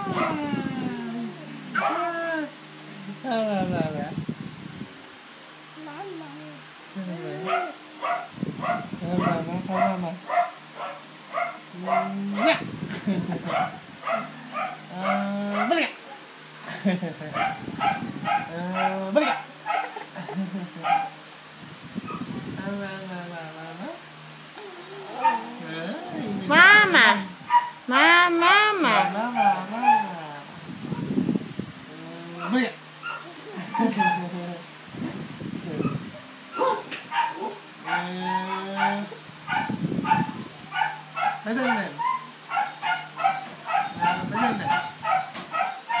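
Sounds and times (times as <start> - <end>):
baby vocalizing: 5.8 - 7.8, 24.6 - 26.8
baby laughing: 19.7 - 21.1, 33.3 - 34.4.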